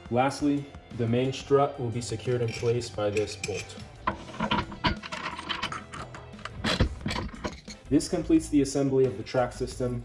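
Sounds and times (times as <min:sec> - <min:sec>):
background music: 0:00.0 - 0:10.0
metal washer and nut clicking: 0:02.4 - 0:07.9.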